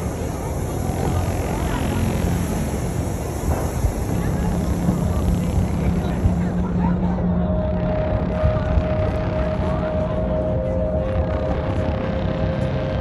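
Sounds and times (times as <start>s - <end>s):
low rumble: 0.0s - 13.0s
people talking faintly: 0.0s - 13.0s.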